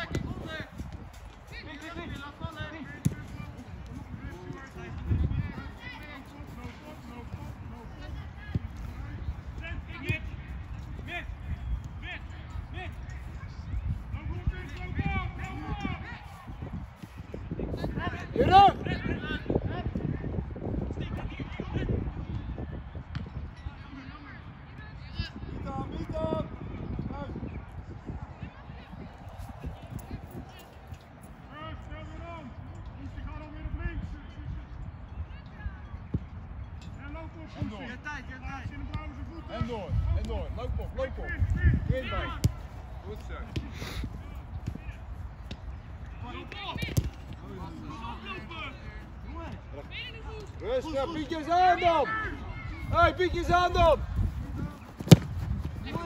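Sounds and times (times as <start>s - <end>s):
wind rumble on microphone: 0.0s - 51.1s, 52.2s - 56.0s
ball being kicked: 46.7s - 47.4s, 54.8s - 56.0s.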